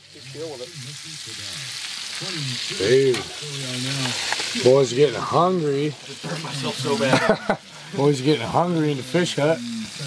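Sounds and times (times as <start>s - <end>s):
man talking: 0.0s - 10.0s
patties sizzling in a frying pan: 0.0s - 10.0s.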